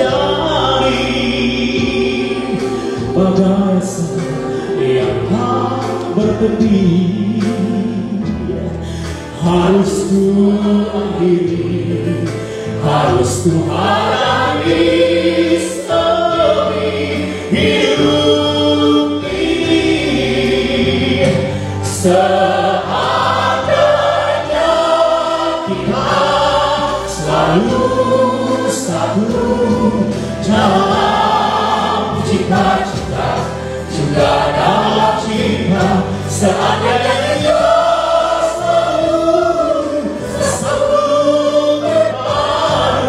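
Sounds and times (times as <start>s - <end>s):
man singing into a microphone: 0.0s - 14.7s, 15.4s - 22.9s
instrumental accompaniment: 0.0s - 43.0s.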